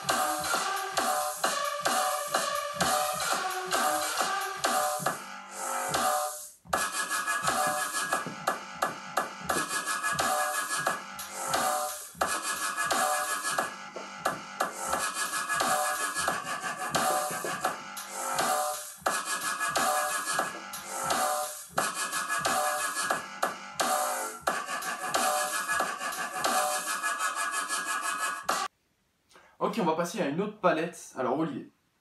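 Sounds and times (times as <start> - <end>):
electronic beat with drum hits: 0.0 - 28.7.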